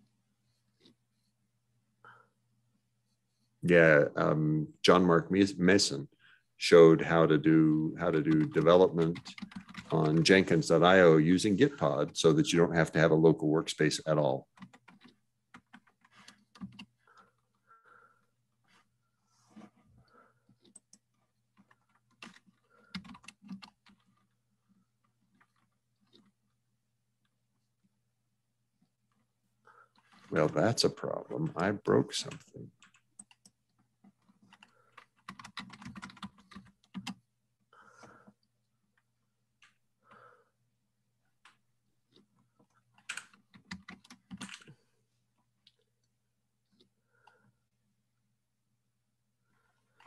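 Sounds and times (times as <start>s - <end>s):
computer keyboard keystrokes: 8.3s - 10.2s, 14.6s - 16.9s, 21.6s - 24.1s, 32.8s - 33.6s, 34.5s - 37.2s, 43.0s - 44.7s.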